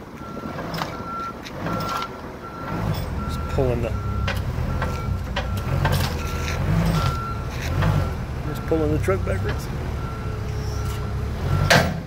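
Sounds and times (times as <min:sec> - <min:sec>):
engine rumbling: 0:00.0 - 0:12.0
backup alarm beeping: 0:00.2 - 0:11.8.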